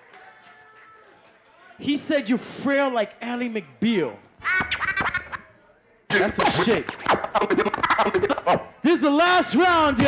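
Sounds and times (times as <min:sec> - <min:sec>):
man speaking: 0:06.1 - 0:10.0.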